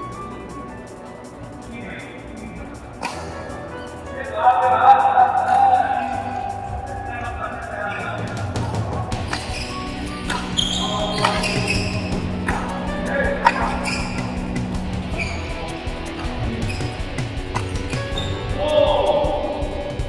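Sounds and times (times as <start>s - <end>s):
background music: 0.0s - 20.0s
voices: 0.0s - 20.0s
rackets striking shuttlecock: 3.0s - 3.5s, 9.1s - 18.6s.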